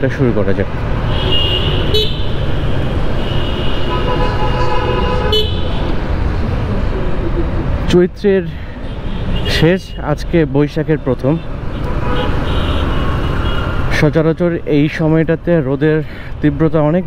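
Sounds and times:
vehicle horn honking: 1.1 - 2.3, 3.2 - 5.7, 11.8 - 13.8.

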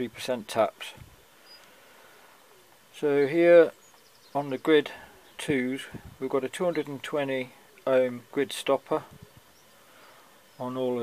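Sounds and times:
distant bird call: 9.2 - 10.8.

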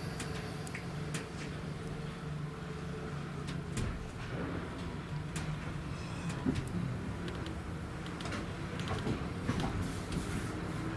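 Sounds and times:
train interior low hum: 0.0 - 10.9.

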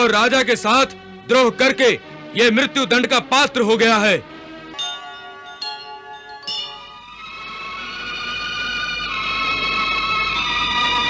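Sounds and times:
bell-like chime tones: 4.8 - 7.6.

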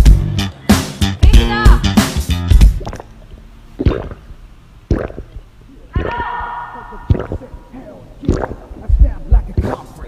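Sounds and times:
man gulping from bottle: 2.7 - 6.2, 7.1 - 7.6, 8.2 - 8.9
held vocal sound: 5.7 - 9.0.

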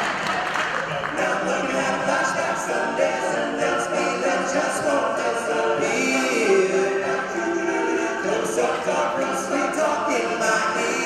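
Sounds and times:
men singing a cappella harmony: 1.1 - 11.0.

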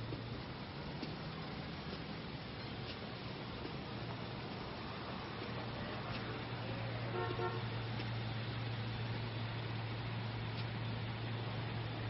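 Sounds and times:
car horn toots: 7.1 - 7.8.

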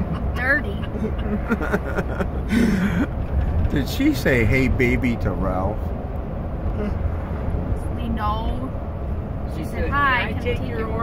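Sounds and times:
van engine and road noise: 0.0 - 11.0.

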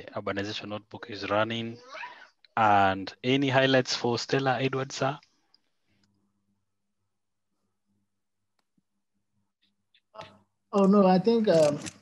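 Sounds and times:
person speaking: 10.2 - 12.0.

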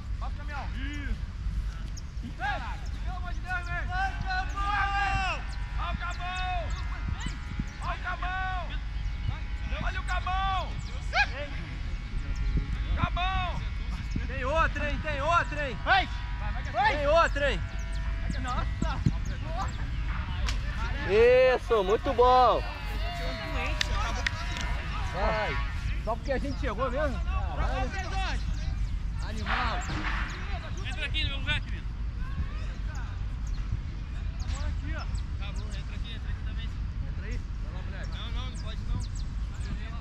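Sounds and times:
steady low rumble: 0.0 - 40.0
players shouting calls: 0.2 - 36.0.

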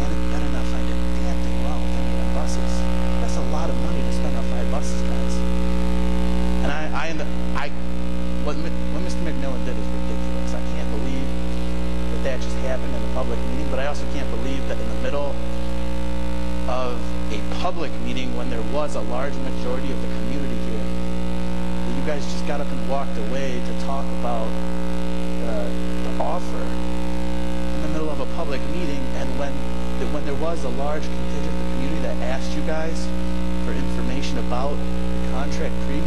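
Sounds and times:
electrical mains hum: 0.0 - 36.0.

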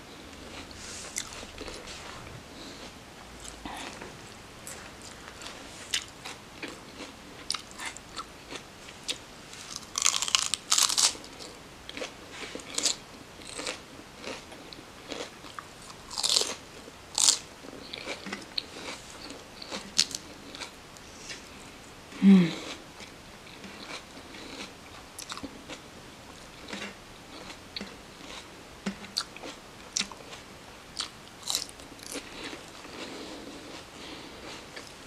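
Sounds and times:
chewing crisp lettuce: 0.3 - 21.6, 22.6 - 35.0.

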